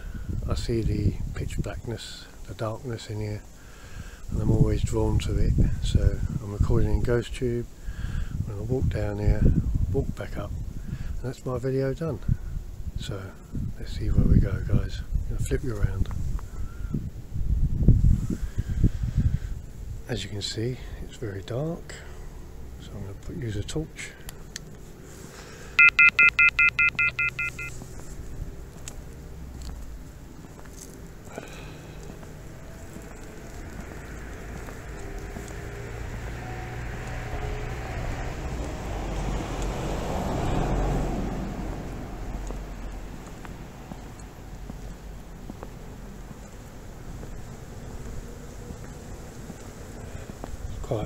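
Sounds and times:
vehicle passing: 24.8s - 51.0s
electronic beeps: 25.8s - 27.8s.

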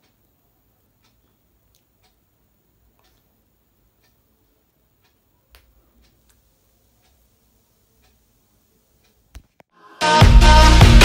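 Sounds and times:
faint ticks: 0.0s - 7.4s, 8.0s - 8.3s, 9.0s - 9.6s.

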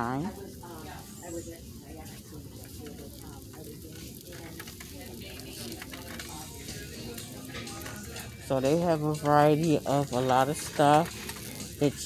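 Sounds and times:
store background hum: 0.0s - 12.0s
crackling handling noise: 0.7s - 12.0s.

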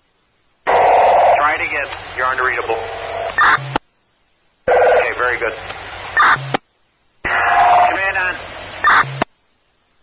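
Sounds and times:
radio electronic chirp: 0.7s - 3.8s, 4.7s - 6.6s, 7.2s - 9.3s
radio squelch burst: 0.7s - 3.8s, 4.7s - 6.6s, 7.2s - 9.3s.

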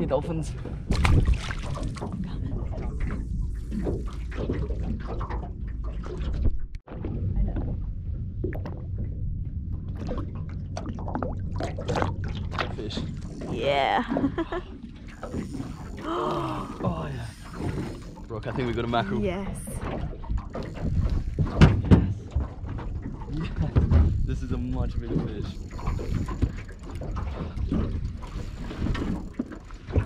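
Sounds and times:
low outdoor rumble: 5.5s - 17.3s.

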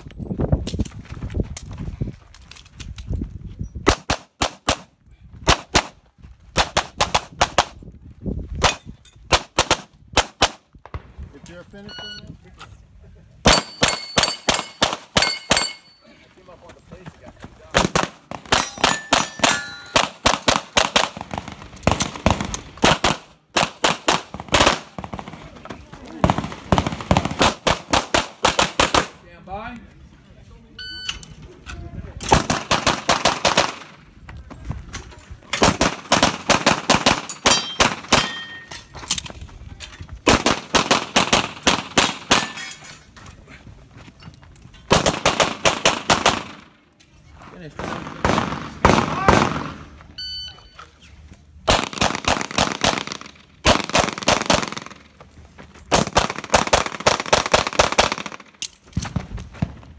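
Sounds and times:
pistol shots in rapid bursts: 3.8s - 7.8s, 8.6s - 11.0s, 13.4s - 15.8s, 17.7s - 25.6s, 26.2s - 29.2s, 32.3s - 34.0s, 35.6s - 38.6s, 40.2s - 42.6s, 44.9s - 46.8s, 47.8s - 50.0s, 51.6s - 55.2s, 55.9s - 59.3s
shot timer beep: 11.9s - 12.3s, 50.2s - 50.8s.

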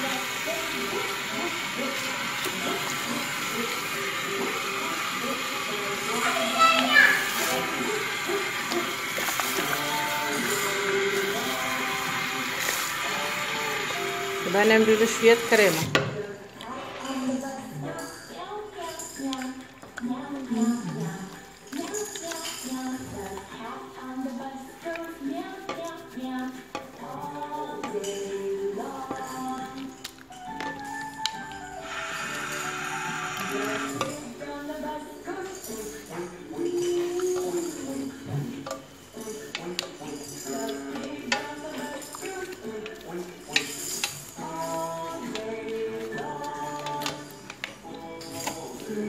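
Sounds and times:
person singing: 0.0s - 49.0s.

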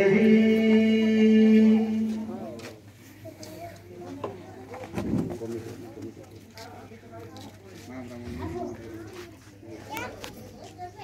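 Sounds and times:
people talking: 1.4s - 11.0s.

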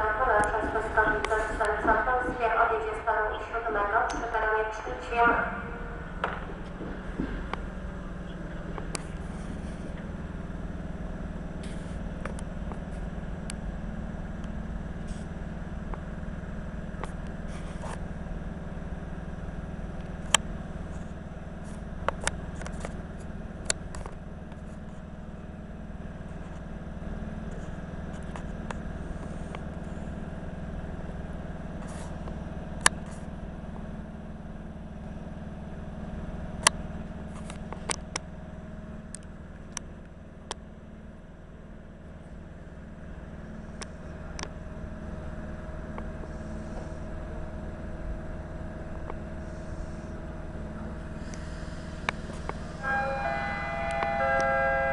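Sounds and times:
electric train humming: 0.0s - 17.0s, 38.4s - 54.9s.

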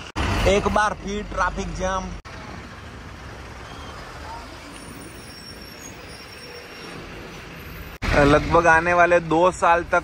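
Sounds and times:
bus engine and road noise: 0.0s - 10.0s.

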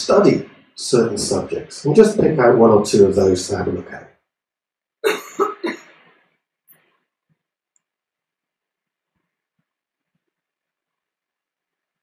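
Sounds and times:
man coughing: 5.1s - 5.8s.

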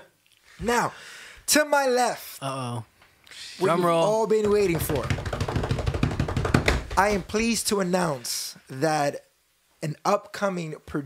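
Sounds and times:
hands drumming on wooden tabletop: 4.4s - 7.4s.

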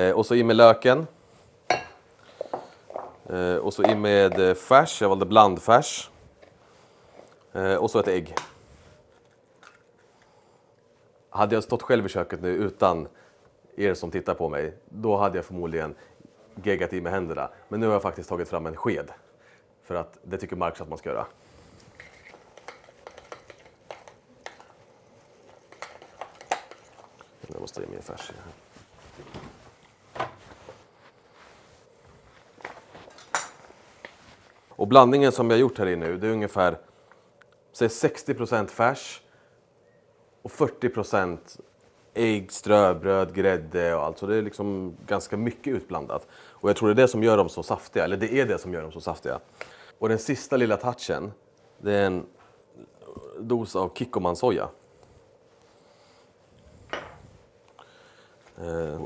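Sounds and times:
handling glass mixing bowl: 1.7s - 4.5s.

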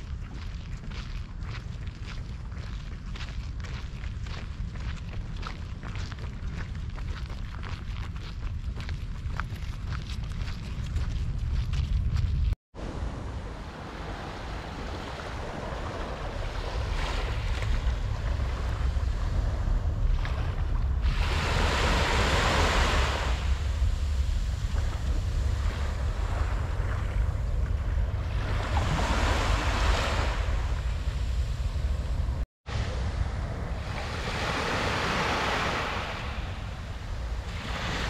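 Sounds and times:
wind rumbling on microphone: 0.0s - 38.0s
small waves breaking on shore: 12.8s - 38.0s.

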